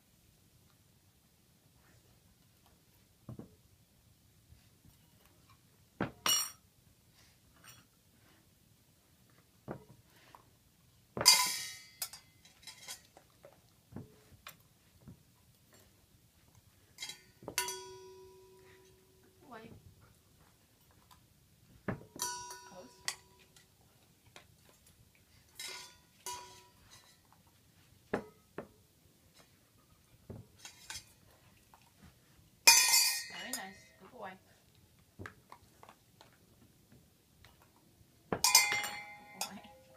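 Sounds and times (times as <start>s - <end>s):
metal dog bowl clank and ring: 17.0s - 19.0s, 22.2s - 23.5s, 25.6s - 27.2s, 32.7s - 33.8s, 38.4s - 39.9s.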